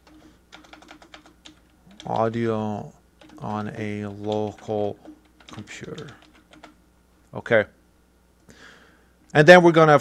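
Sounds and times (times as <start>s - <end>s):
computer keyboard typing: 0.0s - 6.8s.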